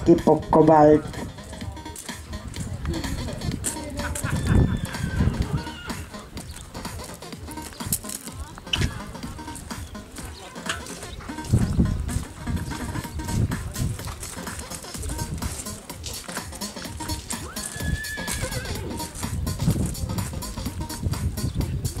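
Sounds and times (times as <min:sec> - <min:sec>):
dull low thumps: 0:00.0 - 0:18.0, 0:18.6 - 0:22.0
faint background music: 0:00.0 - 0:22.0
distant voices: 0:01.0 - 0:22.0.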